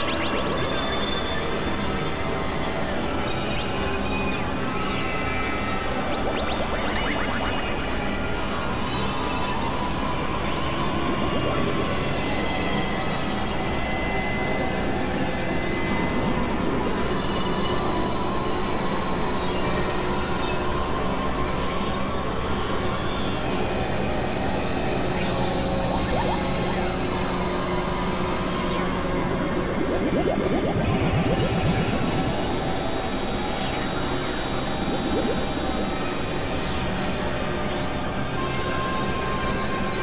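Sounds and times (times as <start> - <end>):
falling synth sweeps: 0.0 - 14.2, 23.7 - 36.8
noise drone synthesizer music: 0.0 - 40.0.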